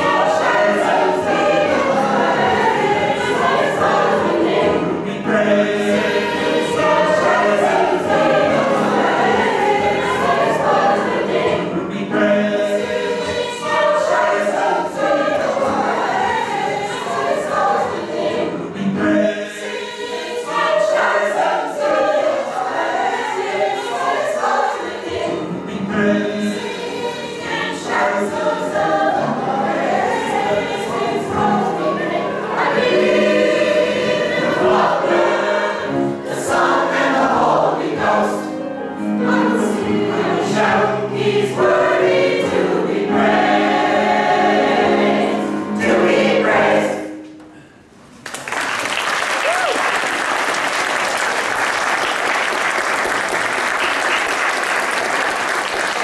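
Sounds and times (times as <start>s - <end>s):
mixed choir singing gospel: 0.0s - 47.4s.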